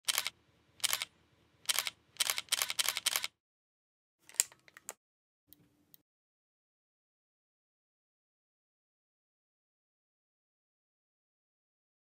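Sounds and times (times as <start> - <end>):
sharp mechanical clicks: 0.0 - 1.1, 1.7 - 3.4.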